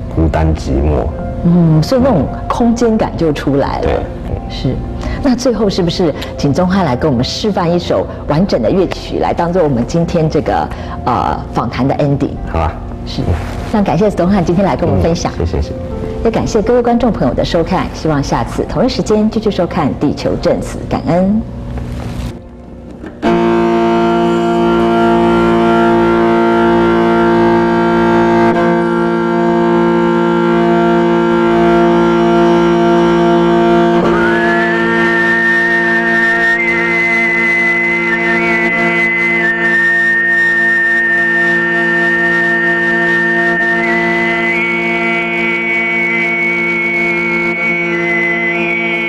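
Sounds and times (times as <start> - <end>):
throat singing: 3.8 - 4.5, 14.8 - 15.6
bowed fiddle: 23.1 - 49.0.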